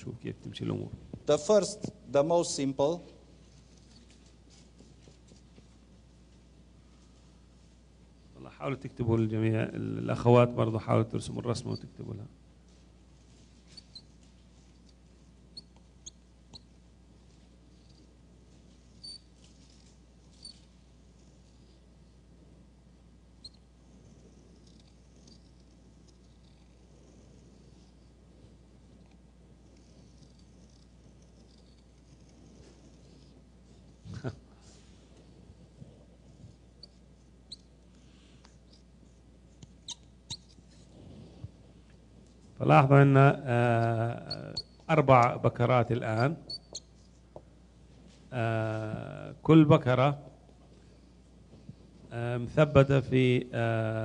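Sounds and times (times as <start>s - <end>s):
steady low hum: 0.0s - 54.0s
marker squeaking on whiteboard: 11.6s - 12.0s, 13.6s - 14.2s, 15.5s - 16.8s, 18.8s - 20.7s, 23.4s - 23.7s, 24.3s - 26.8s, 29.8s - 34.4s, 36.7s - 37.8s, 38.5s - 40.9s, 43.8s - 44.9s, 46.0s - 47.2s.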